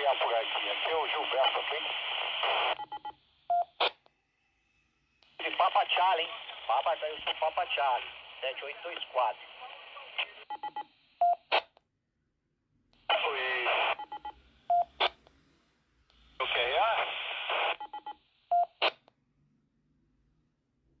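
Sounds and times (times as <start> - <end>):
narrow-band radio voice: 0.0 - 2.7, 5.4 - 10.5, 13.1 - 14.0, 16.4 - 17.8
radio beep tones: 10.2 - 11.6, 13.1 - 15.2, 16.4 - 18.9.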